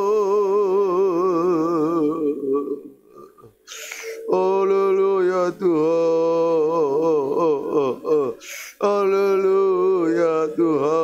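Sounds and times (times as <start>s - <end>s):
man singing held notes: 0.0s - 11.0s
breathy hiss: 3.1s - 4.3s, 8.4s - 8.9s.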